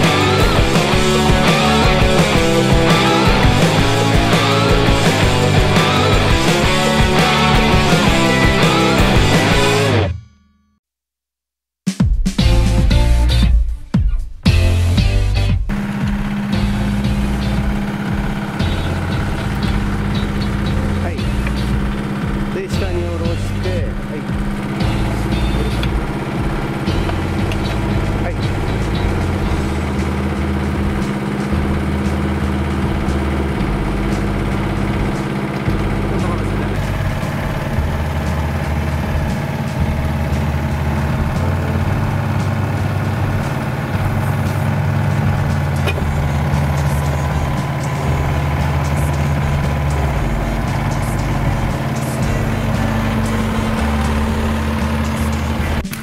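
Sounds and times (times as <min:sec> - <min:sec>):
diesel excavator engine running: 0:00.0 - 0:10.2, 0:14.5 - 0:56.0
background music: 0:00.0 - 0:10.3, 0:12.0 - 0:56.0.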